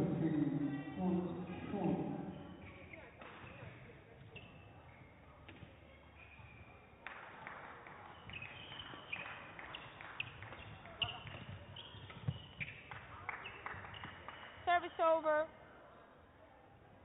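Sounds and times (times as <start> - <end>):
shoes squeaking on court floor: 1.3 - 7.0, 8.0 - 15.0.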